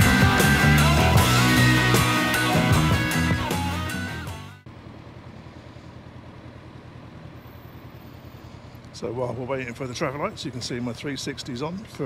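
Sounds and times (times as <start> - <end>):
rock music: 0.0 - 4.6
motorcycle engine idling: 0.0 - 12.0.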